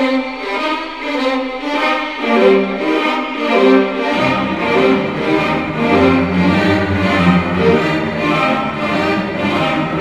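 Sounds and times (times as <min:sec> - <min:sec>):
orchestral music with strings: 0:00.0 - 0:10.0.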